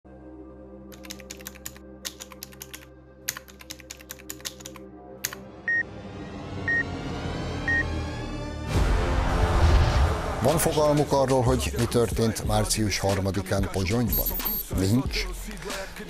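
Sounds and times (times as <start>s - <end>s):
computer keyboard typing: 0.9s - 5.4s
short high beeps: 14.1s - 14.7s.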